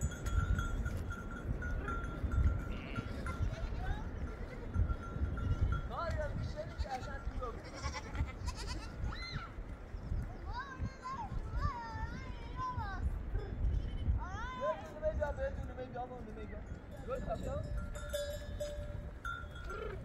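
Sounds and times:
sheep and goats bleating: 1.8 - 5.9, 6.6 - 9.2.

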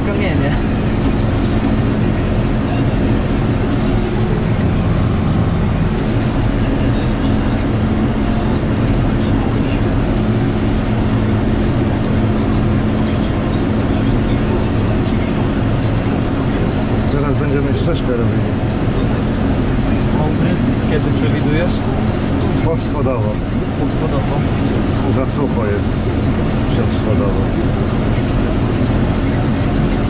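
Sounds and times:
tractor engine droning: 0.0 - 30.0.

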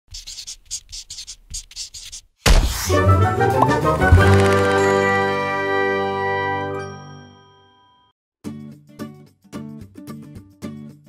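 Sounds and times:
pencil scribbling on paper: 0.1 - 2.3.

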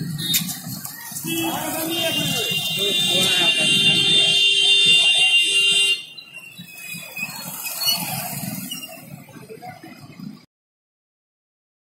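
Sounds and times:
voices: 0.0 - 10.4
busy street noise: 0.0 - 10.5
vehicle horn tone: 1.2 - 6.2.

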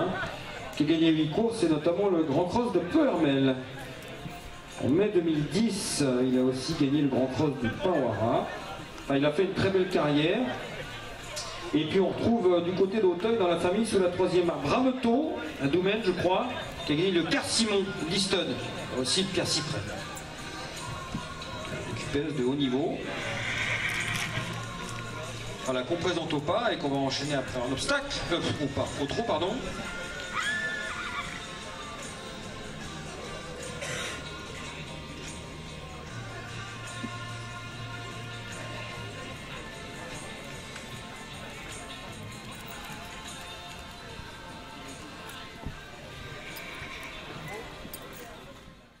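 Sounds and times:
background chatter of people: 0.0 - 49.0
background music: 0.0 - 49.0
young horse neighing: 23.0 - 24.7, 30.2 - 31.6, 33.8 - 34.4, 46.3 - 47.5.

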